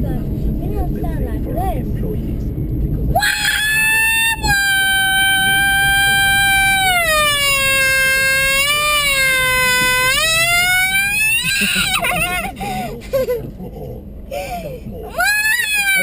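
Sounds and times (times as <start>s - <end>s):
girl imitating a car: 3.2s - 16.0s.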